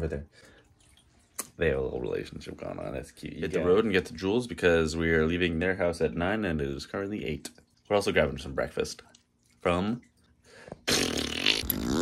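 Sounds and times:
buzzy pitch-bending mouth noise: 0:10.8 - 0:12.0.

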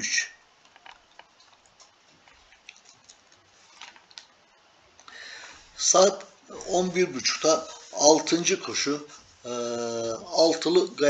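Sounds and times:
soft breath-like rush: 0:05.1 - 0:05.8.

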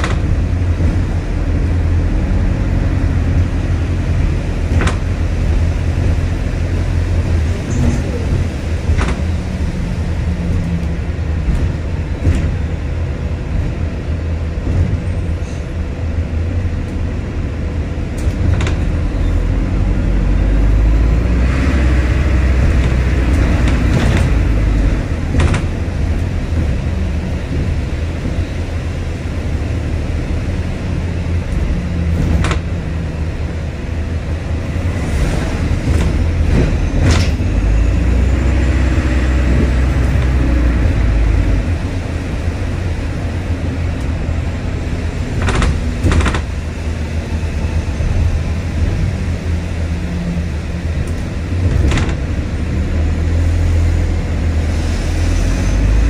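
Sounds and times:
bus body knocking and rattling: 0:00.0 - 0:56.0
bus engine rumble: 0:00.0 - 0:56.0.

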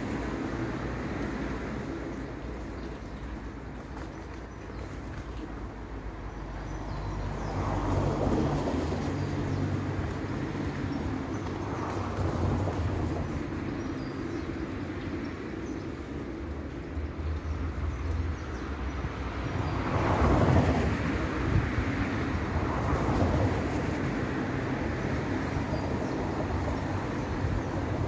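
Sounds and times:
tram rumbling on track: 0:00.0 - 0:28.0.

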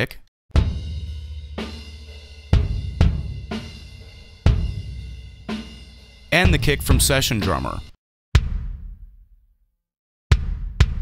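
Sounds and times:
snare and cymbals: 0:00.6 - 0:08.7.

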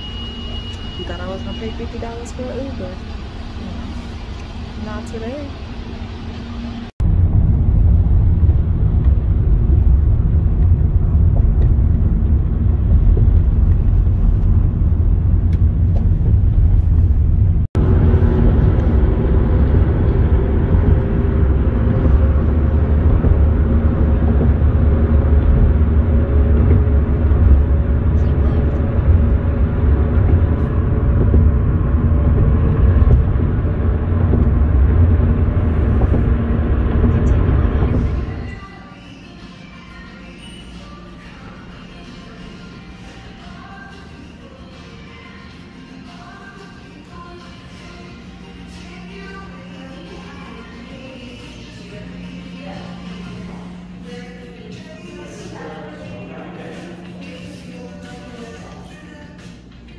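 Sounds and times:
vehicle rumble from inside: 0:00.0 - 0:38.9.

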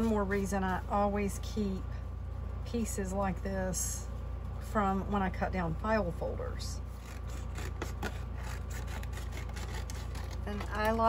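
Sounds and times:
steady low hum: 0:00.0 - 0:11.0
paper rustling and scraping: 0:07.0 - 0:11.0.

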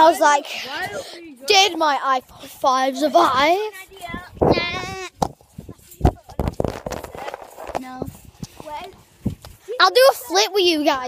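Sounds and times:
high-pitched voice calling out: 0:04.5 - 0:05.2.

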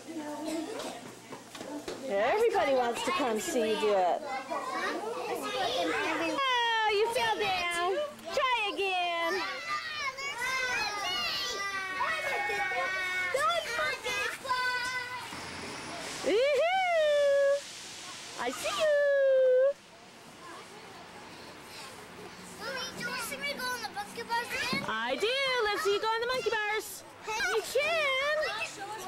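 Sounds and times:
young children talking: 0:00.0 - 0:29.0.

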